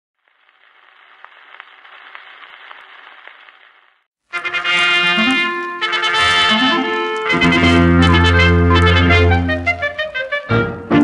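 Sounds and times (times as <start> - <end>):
record surface hiss: 0.2 - 6.2.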